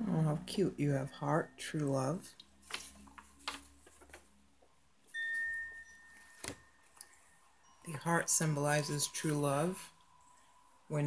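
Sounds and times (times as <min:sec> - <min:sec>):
chime ringing: 0:05.1 - 0:10.6.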